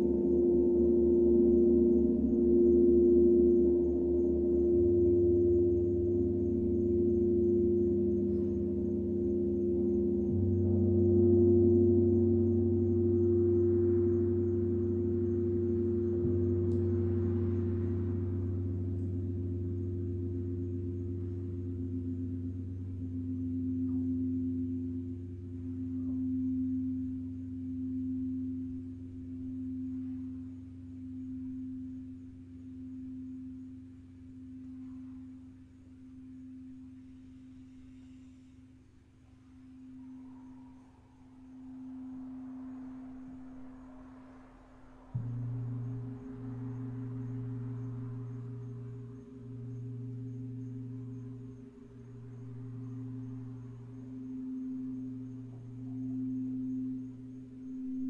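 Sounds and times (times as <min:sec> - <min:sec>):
singing bowls ringing: 0:00.0 - 0:38.8, 0:39.4 - 0:58.0.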